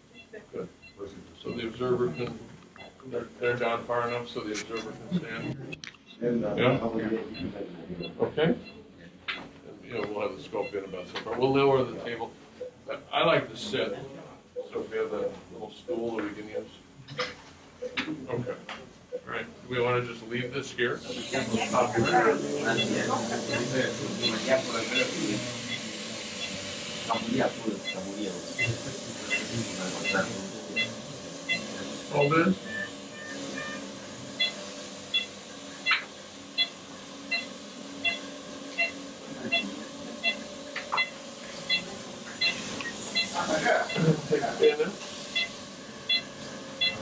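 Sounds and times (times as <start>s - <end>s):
patient monitor beeping: 0.0s - 13.0s, 14.5s - 18.2s, 19.1s - 19.4s, 20.3s - 47.0s
equipment hum: 0.0s - 47.0s
indistinct voices talking: 19.2s - 47.0s
steady high hiss: 20.3s - 47.0s.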